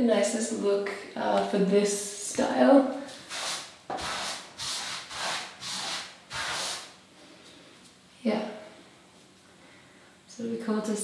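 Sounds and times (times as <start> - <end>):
brush sweeping paint on wall: 3.1 - 7.0.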